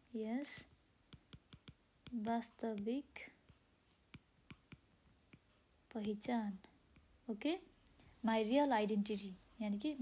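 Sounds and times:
stylus tapping on glass screen: 0:01.1 - 0:05.5.

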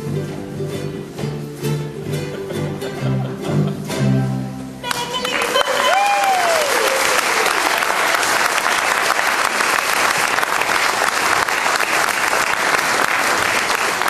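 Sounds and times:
audience applause: 0:04.9 - 0:14.0.

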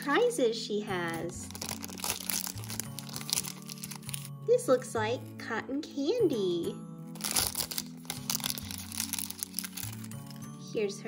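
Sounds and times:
soft background music: 0:00.0 - 0:11.0
plastic wrapper crackling: 0:01.1 - 0:04.4, 0:07.1 - 0:10.6.

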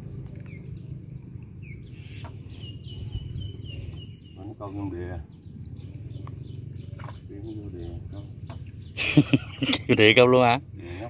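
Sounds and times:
bird chirping: 0:00.0 - 0:11.0
steady low rumble: 0:00.0 - 0:11.0.

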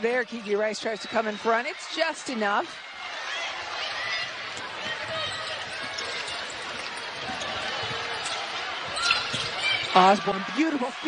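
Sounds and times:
arena crowd noise: 0:00.0 - 0:11.0
shoe squeaks: 0:04.8 - 0:10.1.

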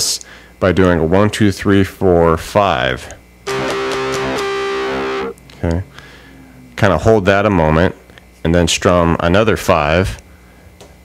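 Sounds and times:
electric guitar strumming with wah: 0:03.5 - 0:05.4.

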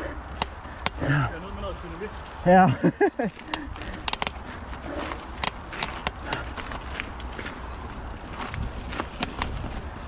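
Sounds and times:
bike rattling: 0:00.0 - 0:10.0
bike tyres clacking on cobbles: 0:00.0 - 0:10.0.

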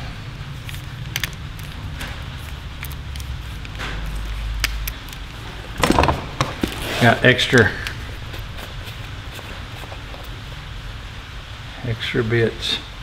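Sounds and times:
steady low hum: 0:00.0 - 0:13.0
handling rustles: 0:00.6 - 0:10.6
screwdriver clicks: 0:00.7 - 0:05.3.

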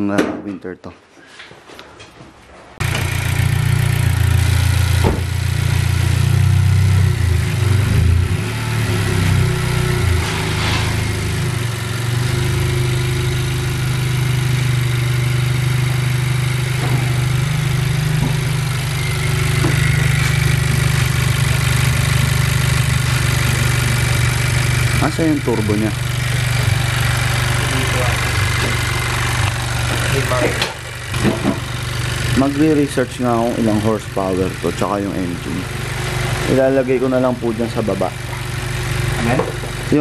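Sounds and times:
car engine starting and idling: 0:02.8 - 0:40.0.

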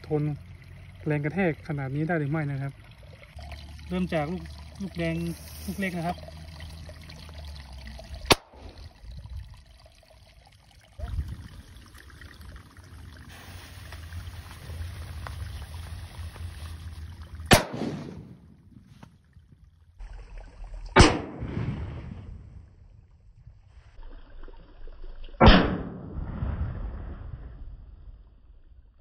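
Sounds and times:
firecracker bangs: 0:17.5 - 0:18.5.

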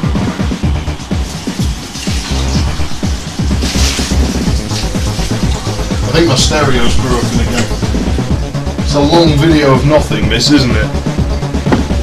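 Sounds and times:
electronic bass line: 0:00.0 - 0:12.0
punchy kick drums dropping in pitch: 0:11.0 - 0:12.0.

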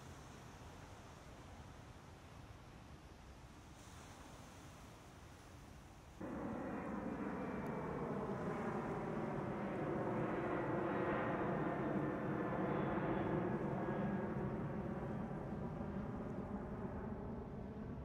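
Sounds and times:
airplane engine drone: 0:06.2 - 0:18.0.

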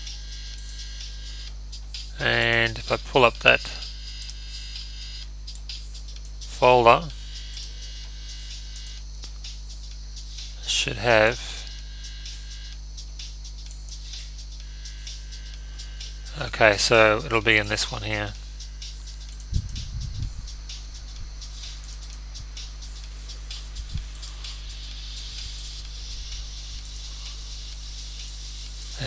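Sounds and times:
low electrical hum: 0:00.0 - 0:29.0.

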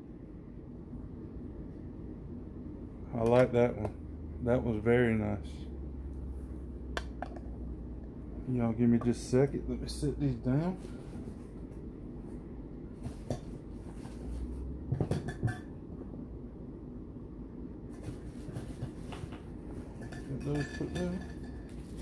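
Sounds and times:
glass jars clinking on hard surface: 0:20.0 - 0:21.7.

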